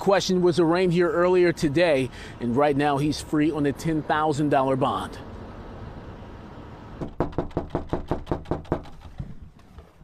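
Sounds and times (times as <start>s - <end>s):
knocking on storm door: 7.0s - 9.0s.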